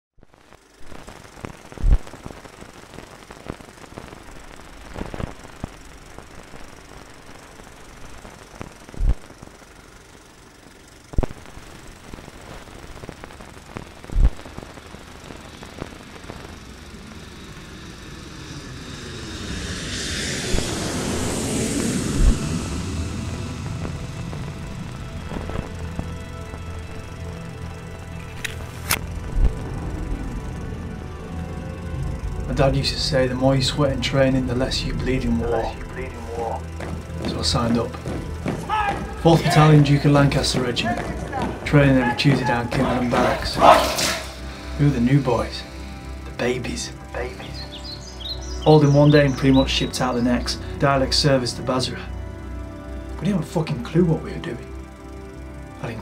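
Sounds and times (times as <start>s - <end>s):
low music drone: 0.4s - 56.0s
loud rushing jet: 17.7s - 24.9s.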